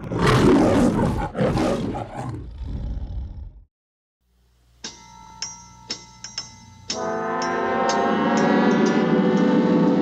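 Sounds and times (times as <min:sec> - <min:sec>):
lion roaring: 0:00.0 - 0:03.6.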